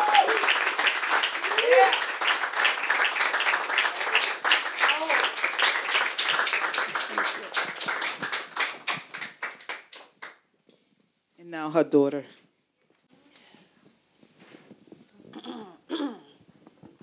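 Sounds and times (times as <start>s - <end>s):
audience applauding: 0.0s - 10.4s.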